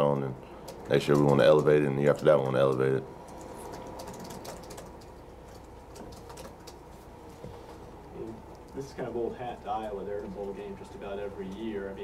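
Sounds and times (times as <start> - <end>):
steady low hum: 0.0 - 12.0
faint scattered clicks: 8.0 - 8.8.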